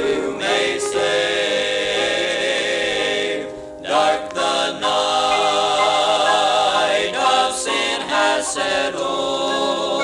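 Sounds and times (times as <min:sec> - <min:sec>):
male quartet singing a hymn: 0:00.0 - 0:10.0.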